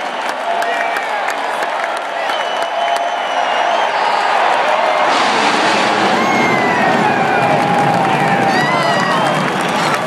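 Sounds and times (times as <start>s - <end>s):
fighter jets roaring overhead: 4.3s - 10.0s.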